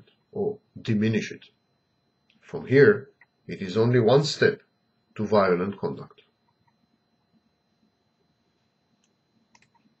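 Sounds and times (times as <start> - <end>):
thin steady high whine: 0.0 - 10.0
faint clicks: 9.0 - 9.9.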